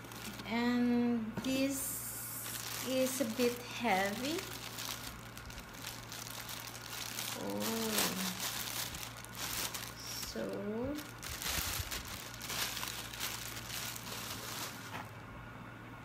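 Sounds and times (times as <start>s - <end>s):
plastic bag crinkling: 0.0s - 0.8s, 1.5s - 15.2s.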